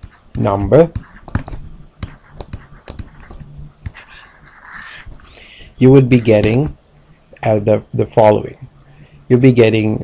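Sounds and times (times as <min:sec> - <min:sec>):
stylus tapping on tablet: 0:00.0 - 0:04.3
stylus scratching on tablet: 0:00.0 - 0:06.7.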